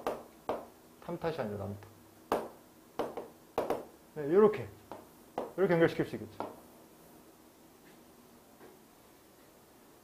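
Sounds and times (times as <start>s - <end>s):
chalk tapping on chalkboard: 0.0s - 0.7s, 2.3s - 3.9s, 4.9s - 5.6s.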